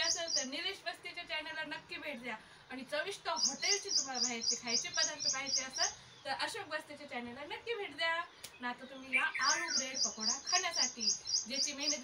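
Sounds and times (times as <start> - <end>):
rapid high-pitched chirps: 0.0 - 0.6, 3.3 - 6.0, 9.1 - 12.0
woman talking: 0.0 - 12.0.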